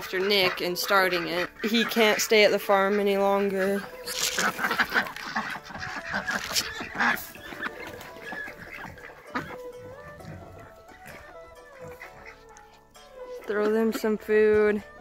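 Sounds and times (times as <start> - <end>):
ducks quacking: 0.0 - 14.9
background music with held notes: 0.0 - 15.0
chickens calling: 0.0 - 15.0.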